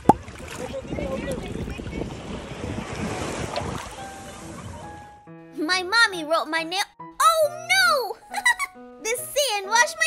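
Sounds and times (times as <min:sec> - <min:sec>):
sea water washing at shoreline: 0:00.0 - 0:05.0
wind buffeting microphone: 0:00.0 - 0:05.0.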